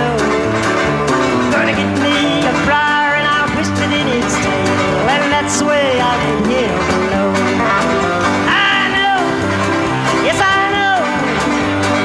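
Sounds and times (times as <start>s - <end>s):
bluegrass band music: 0.0s - 12.0s
plucked banjo: 0.0s - 12.0s.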